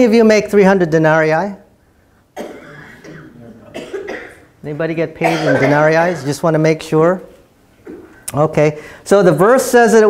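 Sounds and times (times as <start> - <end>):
cough: 2.4 - 4.5, 5.2 - 6.3.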